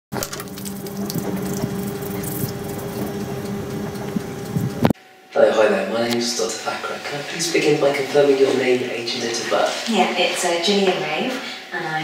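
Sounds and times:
faint steady hum: 0.2 - 12.0.

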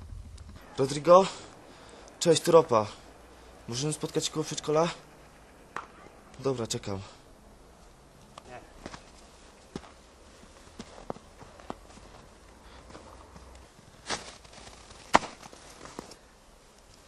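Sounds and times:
sharp cracks: 5.7 - 6.5, 14.8 - 15.6
footsteps in snow: 8.8 - 16.2.

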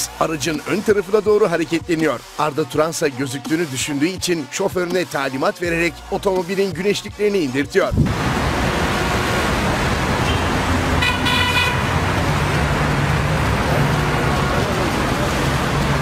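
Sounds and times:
engines rumbling in traffic: 7.1 - 16.0
car horn: 10.2 - 12.2.

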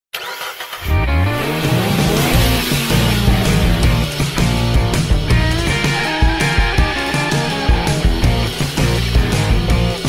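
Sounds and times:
car engine revving: 0.2 - 10.0
music: 0.7 - 10.0.

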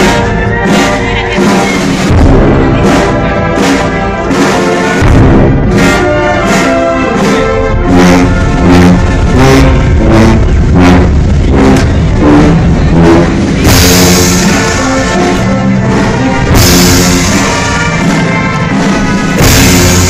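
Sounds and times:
brass band funeral march: 0.0 - 20.0
percussion strokes: 0.0 - 20.0.

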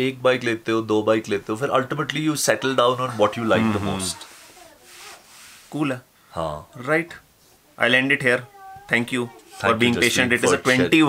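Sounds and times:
men talking: 0.0 - 4.8, 7.8 - 11.0.

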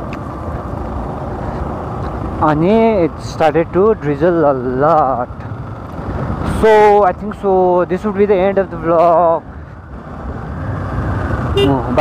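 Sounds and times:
motorcycle engine rumble: 0.0 - 12.0
road rush: 0.0 - 12.0
person speaking: 2.3 - 5.5, 6.4 - 9.5, 11.6 - 12.0.

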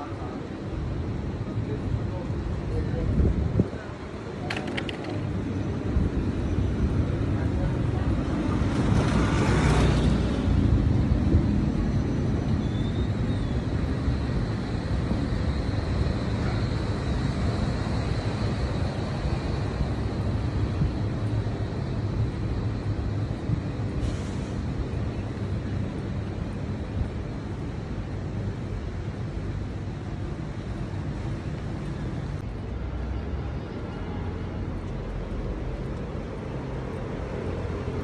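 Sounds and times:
low rumble of street traffic: 0.0 - 38.0.

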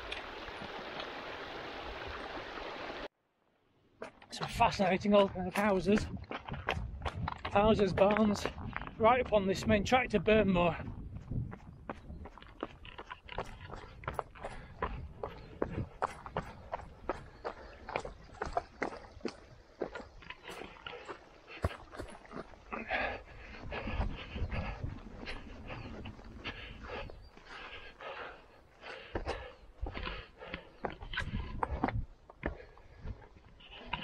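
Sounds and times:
footsteps on stony ground: 4.0 - 34.0
wind buffeting microphone: 5.3 - 20.3, 22.0 - 27.7, 29.7 - 33.2.

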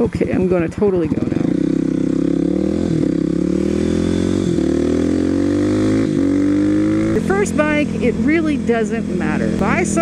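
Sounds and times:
motorcycle engine accelerating: 0.0 - 10.0.

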